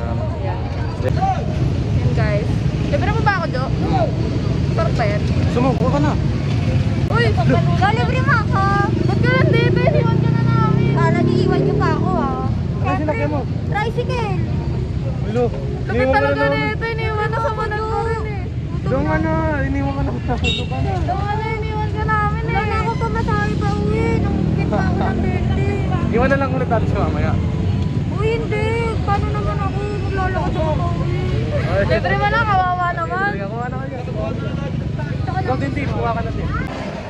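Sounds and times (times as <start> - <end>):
motorcycles: 0.0 - 37.0
street traffic rumble: 0.0 - 37.0
people talking: 7.1 - 14.5.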